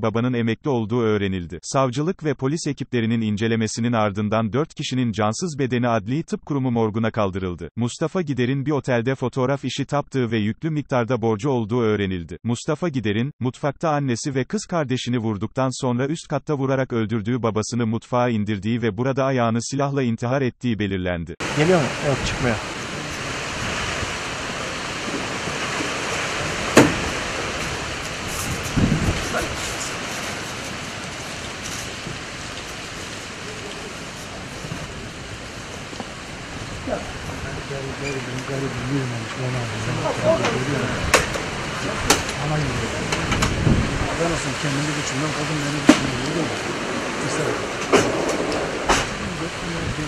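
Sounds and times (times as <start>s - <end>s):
low voice: 0.0s - 23.4s, 28.8s - 29.8s, 33.4s - 34.5s, 36.8s - 41.1s, 41.8s - 43.4s, 44.0s - 46.6s, 49.1s - 50.0s
outdoor background hiss: 21.4s - 50.0s
sharp knocks: 26.7s - 27.2s, 41.1s - 41.5s.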